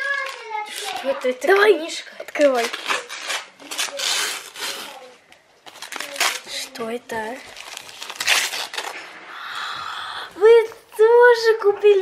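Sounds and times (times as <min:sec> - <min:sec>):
wrapping paper tearing: 0:00.0 - 0:09.3.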